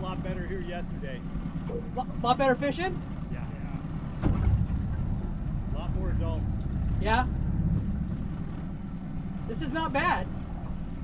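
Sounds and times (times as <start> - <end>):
boat motor rumbling: 0.0 - 11.0.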